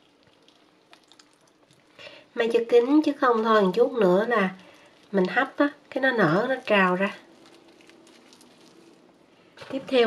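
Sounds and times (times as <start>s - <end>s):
low steady hum: 0.0s - 10.0s
plastic gloves crinkling: 0.0s - 10.0s
handling raw duck skin: 4.2s - 9.8s.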